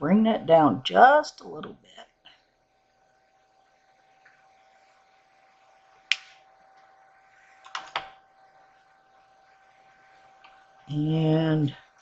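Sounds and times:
faint electrical whine: 0.0s - 12.0s.

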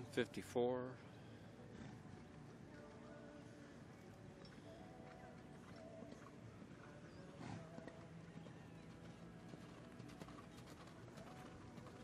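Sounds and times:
horse breathing: 1.0s - 12.0s
horse cantering on sand: 1.6s - 12.0s.

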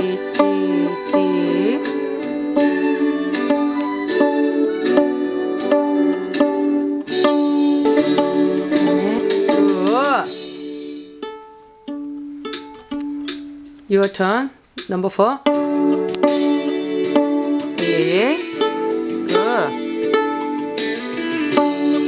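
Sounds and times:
violin strings plucked pizzicato: 0.0s - 13.8s, 15.4s - 22.0s
backing music: 0.0s - 22.0s.

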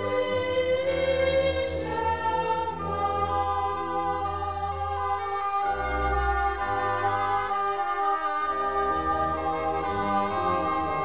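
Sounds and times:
oboes holding sustained notes: 0.0s - 11.0s.

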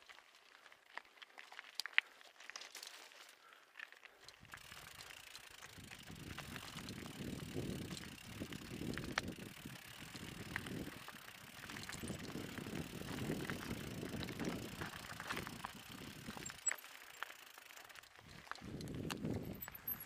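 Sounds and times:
bike rattling: 0.0s - 20.0s
tyres crunching over stones: 0.0s - 20.0s.

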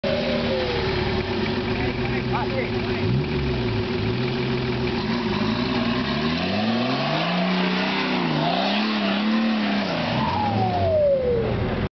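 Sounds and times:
off-road vehicle engine revving: 0.0s - 11.5s.

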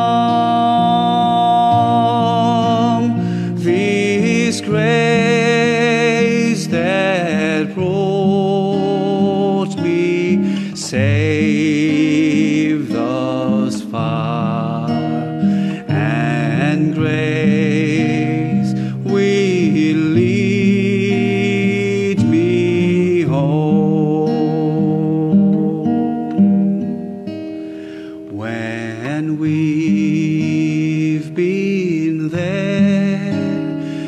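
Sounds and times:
man singing with vibrato: 0.0s - 26.4s, 27.8s - 34.0s
acoustic guitar strumming: 0.0s - 34.0s.

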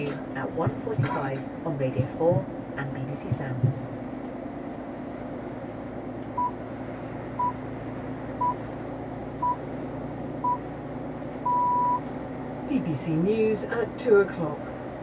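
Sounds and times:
car interior hum: 0.0s - 15.0s
radio time signal beeps: 8.4s - 8.6s, 11.5s - 12.0s.

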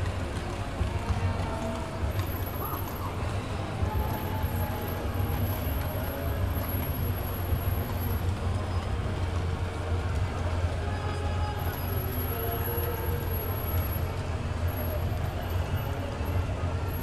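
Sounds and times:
hubbub of people: 0.0s - 17.0s
low street rumble: 0.0s - 17.0s.

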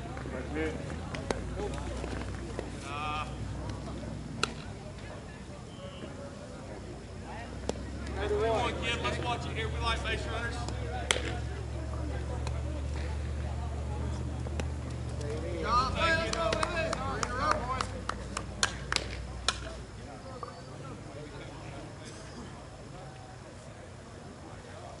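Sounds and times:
bat hitting ball: 11.0s - 11.4s.

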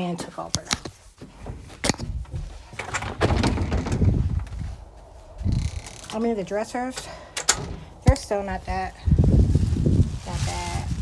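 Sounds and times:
wind buffeting microphone: 1.4s - 11.0s.

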